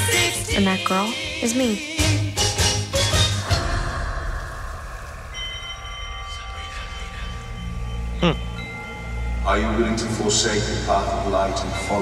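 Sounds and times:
low rumbling drone: 3.4 - 12.0
thin sustained high tones: 5.0 - 12.0
dialogue: 8.1 - 12.0.

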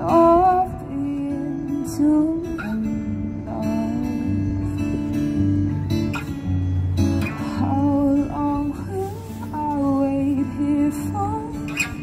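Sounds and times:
woman singing: 0.0 - 5.5, 7.3 - 12.0
acoustic guitar strummed and picked: 0.0 - 12.0.

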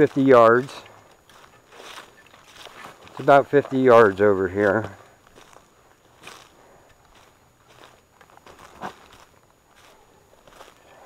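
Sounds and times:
footsteps crunching through dry leaves: 0.0 - 11.0.

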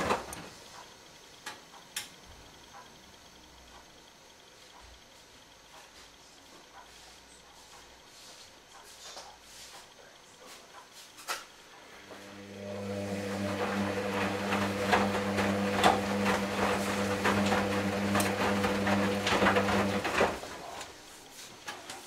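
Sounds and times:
washing machine motor hum: 0.0 - 22.0.

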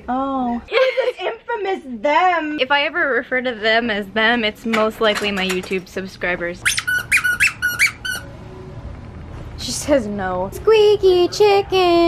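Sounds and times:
squeaky dog toy squeaks: 6.6 - 8.3.

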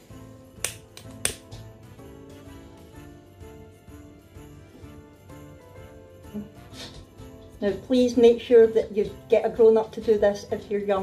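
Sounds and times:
torch lighter igniter clicks: 0.6 - 1.5.

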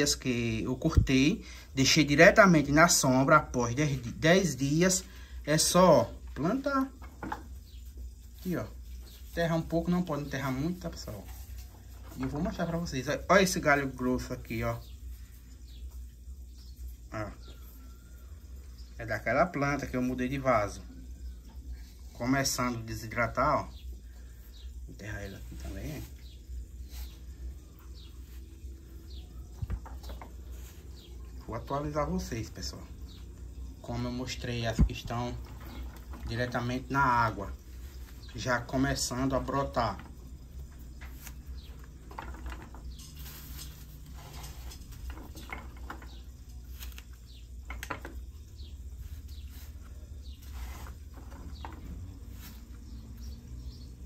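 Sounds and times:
stems clicking and scraping in sand: 0.0 - 17.8, 19.0 - 54.0
bird chirping: 0.0 - 54.0.

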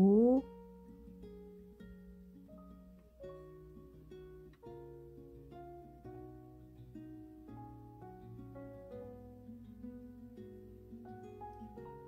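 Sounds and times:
gentle plucked string music: 0.0 - 12.0.

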